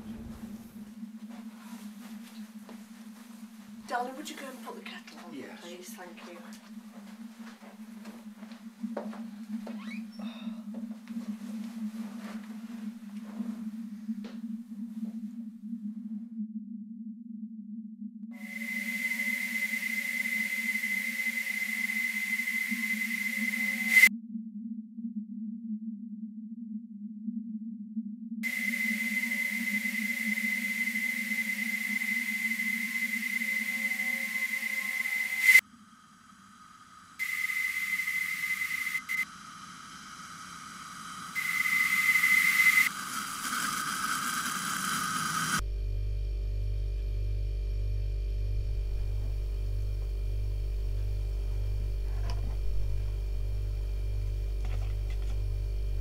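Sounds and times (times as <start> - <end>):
low electrical hum: 0.0 - 13.9, 35.6 - 42.9, 45.6 - 56.0
low steady drone: 0.0 - 56.0
kettle whistling: 8.8 - 10.7, 18.4 - 24.1, 28.4 - 45.6, 51.0 - 56.0
crackling haze: 18.4 - 24.1, 28.4 - 45.6
bursts of static hiss: 36.2 - 45.6.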